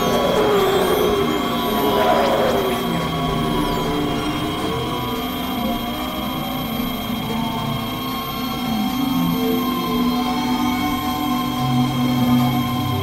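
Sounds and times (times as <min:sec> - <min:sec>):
electronic drone music: 0:00.0 - 0:06.5.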